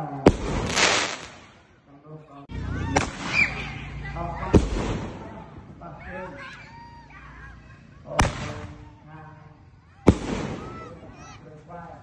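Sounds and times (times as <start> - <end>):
people's voices: 1.8 - 12.0.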